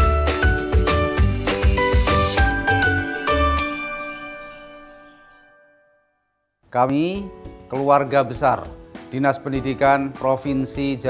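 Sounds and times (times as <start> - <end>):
bouncy jingle with chiming notes: 0.2 - 5.8.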